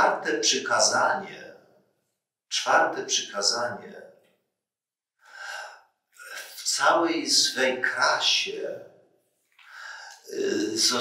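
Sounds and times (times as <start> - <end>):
man speaking: 0.0 - 1.5, 2.5 - 4.0, 5.4 - 8.8, 9.8 - 11.0
man's sharp in-breath: 5.3 - 5.8, 9.6 - 10.3.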